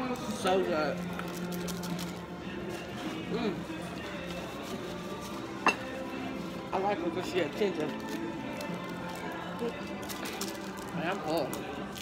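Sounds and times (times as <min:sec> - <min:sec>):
restaurant background music: 0:00.0 - 0:12.0.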